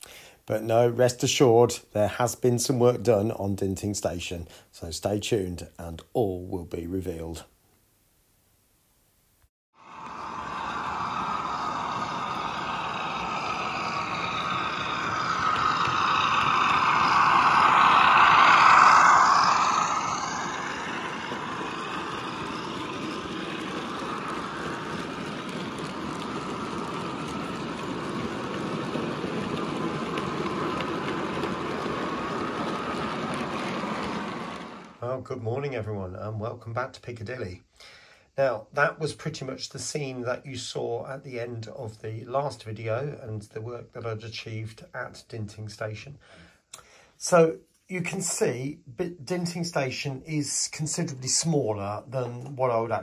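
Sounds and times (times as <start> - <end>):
train running on rails: 9.8 - 35.0.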